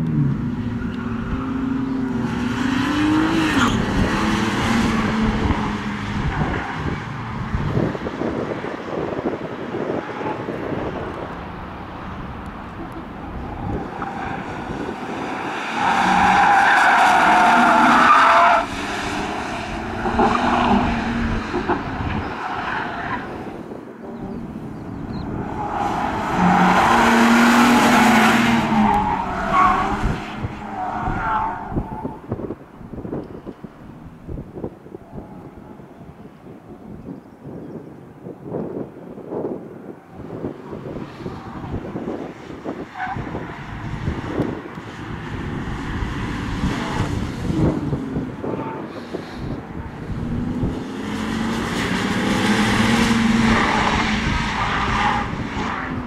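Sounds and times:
car engine revving hard: 50.0 - 55.4.

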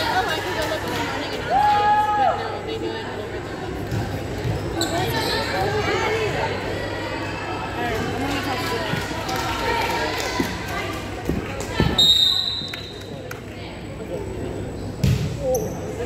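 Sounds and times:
girls' voices chattering: 0.0 - 12.0.

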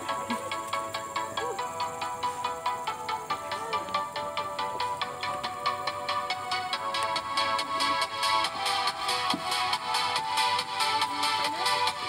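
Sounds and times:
background music with quick beat: 0.0 - 12.0.

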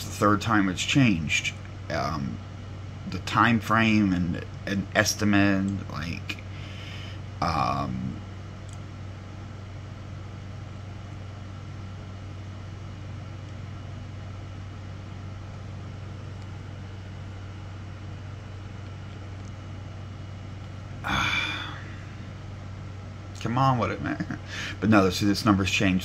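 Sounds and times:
low mechanical hum: 0.0 - 26.0.

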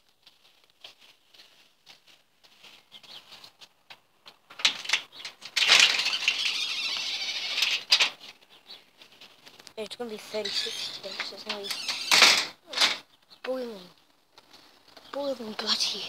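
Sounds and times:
door scraping: 4.6 - 8.3, 10.4 - 13.0.

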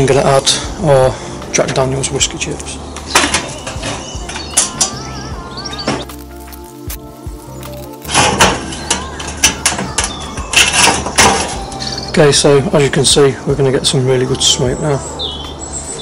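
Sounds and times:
wood chips clattering: 6.0 - 10.0.

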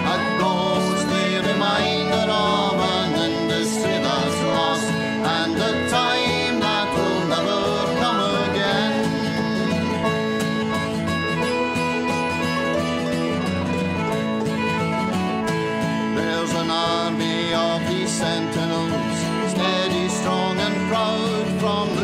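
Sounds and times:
acoustic guitar: 0.0 - 22.0
banjo: 0.0 - 22.0.

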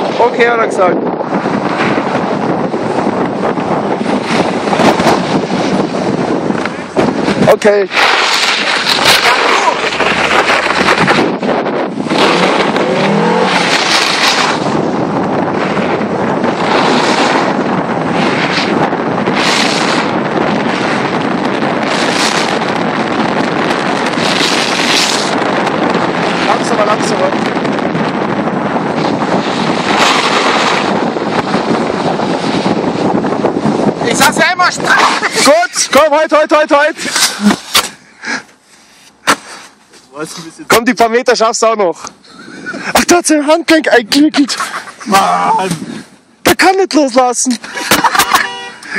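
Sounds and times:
wind rushing over microphone: 0.0 - 48.9
tyres on snow: 4.2 - 21.1, 23.8 - 27.3, 28.9 - 40.7, 42.2 - 48.9
car engine: 8.1 - 17.6.

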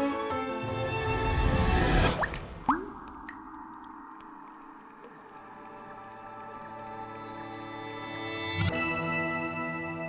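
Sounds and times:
water drops plopping: 2.1 - 7.6
quiet background music: 5.0 - 10.0.

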